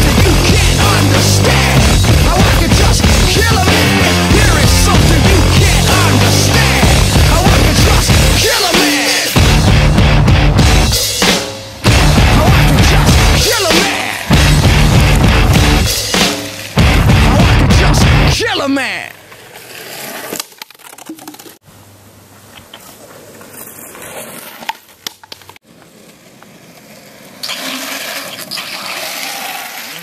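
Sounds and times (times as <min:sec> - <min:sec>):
voices outdoors: 0:00.0 - 0:09.4, 0:12.1 - 0:14.3, 0:17.3 - 0:19.3
loud music with heavy beat: 0:00.0 - 0:18.5
longboard wheels rolling on asphalt: 0:19.0 - 0:21.6, 0:22.3 - 0:30.0.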